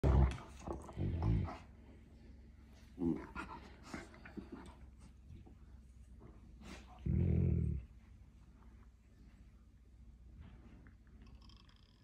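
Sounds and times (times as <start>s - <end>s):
dogs play-fighting: 0.0s - 1.8s, 2.8s - 5.6s.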